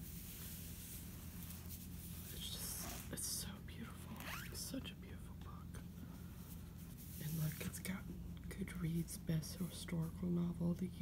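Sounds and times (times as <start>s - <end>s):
person whispering: 2.3s - 5.9s.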